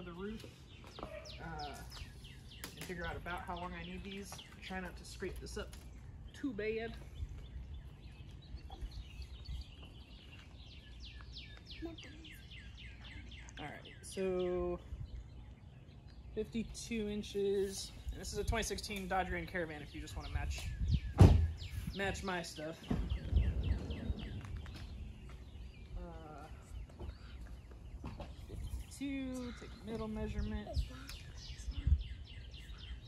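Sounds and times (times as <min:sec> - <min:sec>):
songbird singing falling notes: 0:00.0 - 0:17.3, 0:17.9 - 0:33.0
low outdoor rumble: 0:00.0 - 0:33.0
low rumble: 0:22.7 - 0:26.9.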